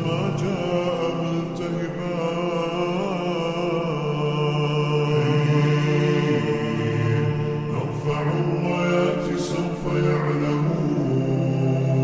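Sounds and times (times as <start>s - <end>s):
chanted vocals with reverb: 0.0s - 12.0s.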